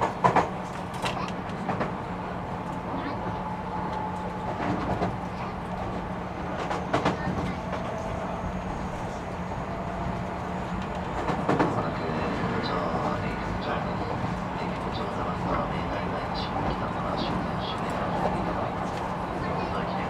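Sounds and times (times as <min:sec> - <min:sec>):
train hum and rolling wheels: 0:00.0 - 0:20.0.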